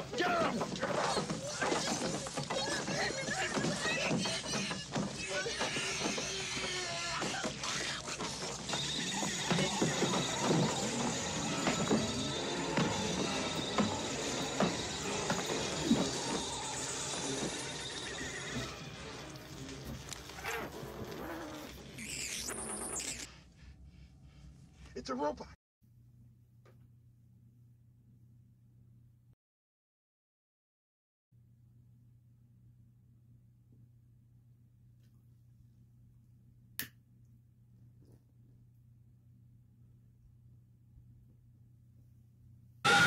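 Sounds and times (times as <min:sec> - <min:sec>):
shrill screams and shrieks: 0:00.0 - 0:18.9
dramatic horror music: 0:08.7 - 0:21.1.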